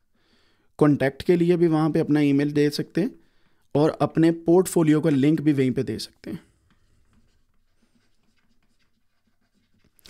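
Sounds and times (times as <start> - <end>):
stylus scratching on drawing tablet: 6.6 - 10.0.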